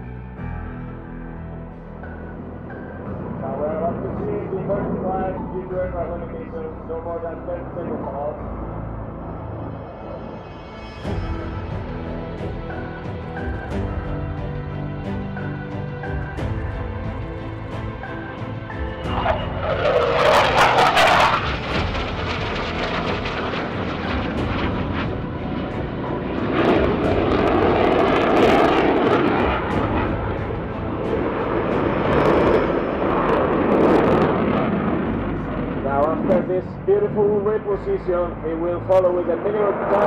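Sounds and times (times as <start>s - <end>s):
jet engine noise in flight: 18.0s - 37.6s.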